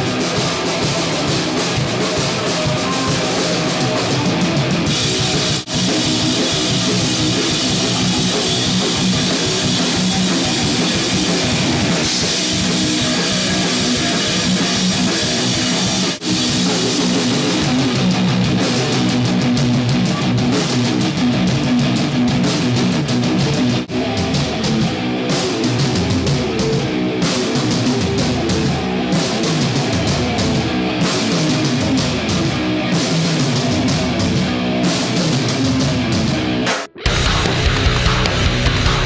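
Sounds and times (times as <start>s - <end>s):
metal band music: 0.0s - 39.0s.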